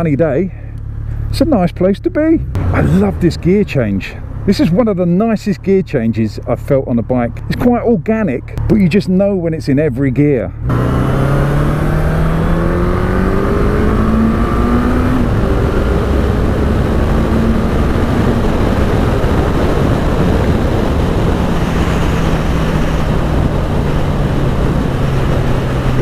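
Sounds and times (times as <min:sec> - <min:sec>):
motorcycle engine accelerating: 0:10.6 - 0:26.0
wind rush on microphone: 0:12.2 - 0:26.0.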